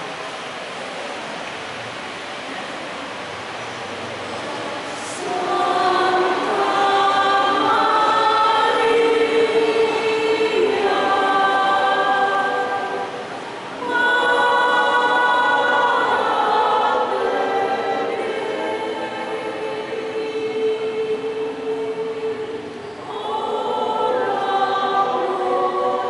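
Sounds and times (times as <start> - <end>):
women's choir singing a hymn: 4.5 - 26.0.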